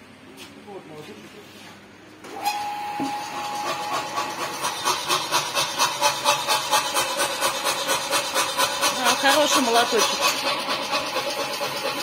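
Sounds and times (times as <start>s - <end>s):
pneumatic power hammer chuffing: 2.3s - 12.0s.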